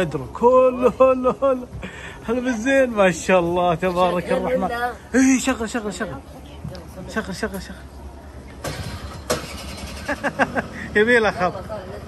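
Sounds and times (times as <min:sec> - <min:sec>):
car engine starting bursts: 0:08.6 - 0:11.2.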